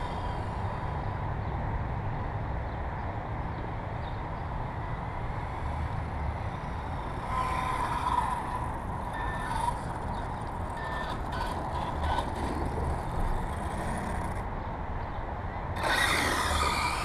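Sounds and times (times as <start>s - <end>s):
low outdoor rumble: 0.0s - 17.0s
rc car electric motor whining: 6.6s - 14.4s, 15.8s - 17.0s.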